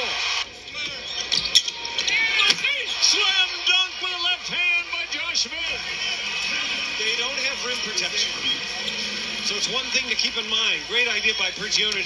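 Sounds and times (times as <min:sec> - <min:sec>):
arena crowd noise: 0:00.0 - 0:12.0
commentator speaking: 0:02.2 - 0:08.7, 0:09.4 - 0:12.0.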